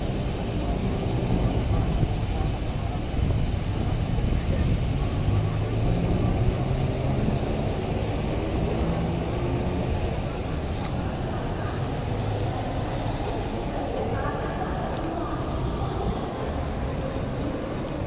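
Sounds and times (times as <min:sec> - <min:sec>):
people chattering: 0:00.0 - 0:18.0
traffic rumble: 0:00.0 - 0:18.0.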